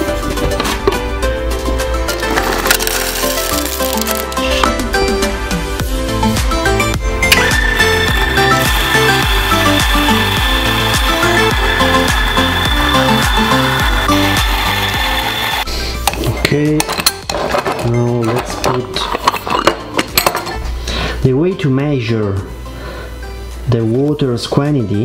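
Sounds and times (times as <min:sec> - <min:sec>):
background music: 0:00.0 - 0:25.0
electric coffee grinder: 0:02.4 - 0:04.4, 0:07.3 - 0:15.7.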